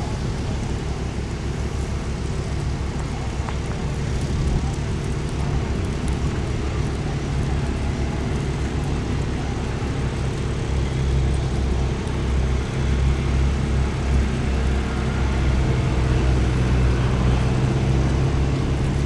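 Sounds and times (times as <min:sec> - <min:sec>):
low rumble with hum: 0:00.0 - 0:19.0.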